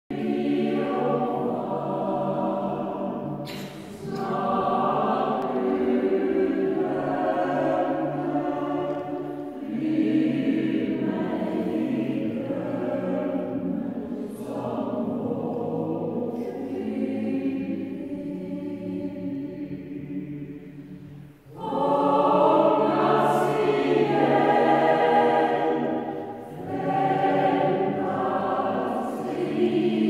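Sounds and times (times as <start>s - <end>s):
mixed choir singing: 0.1s - 30.0s.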